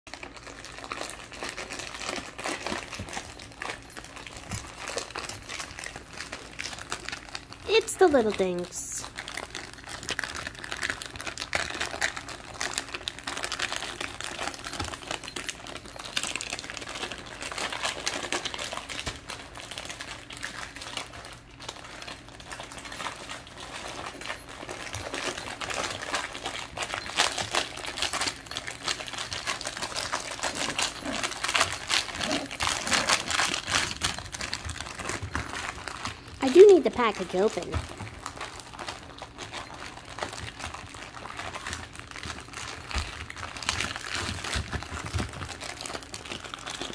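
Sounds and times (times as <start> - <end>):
dogs pawing and chewing: 0.1 - 46.9
plastic package crinkling: 0.1 - 46.9.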